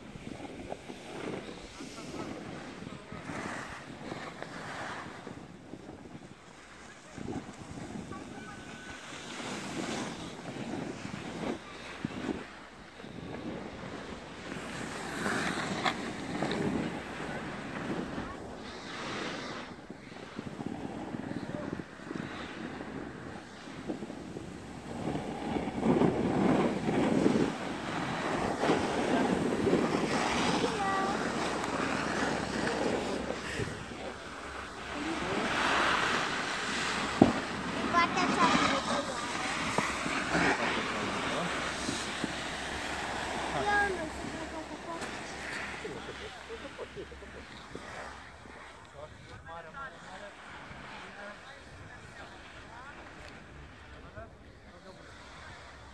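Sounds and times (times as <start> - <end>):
skis sliding over packed snow: 0.0 - 55.9
wind buffeting microphone: 0.0 - 55.9.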